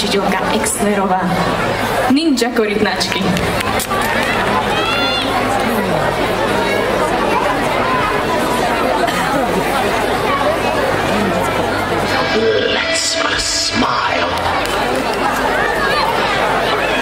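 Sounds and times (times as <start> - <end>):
audience chatter: 0.0 - 17.0.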